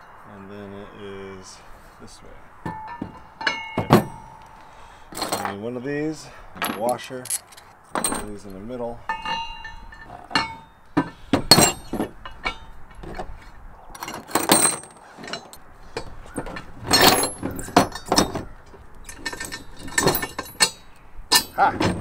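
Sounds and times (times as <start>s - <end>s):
steel bolts and washers clinking: 2.6s - 5.7s, 6.6s - 22.0s.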